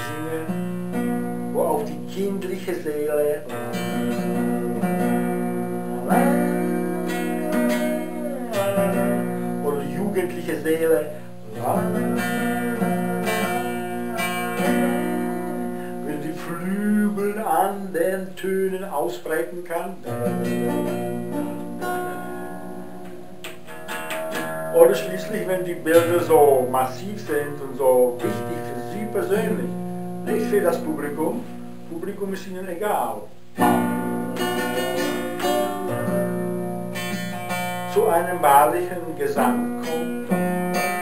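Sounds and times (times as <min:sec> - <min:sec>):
acoustic guitar strumming: 0:00.0 - 0:41.0.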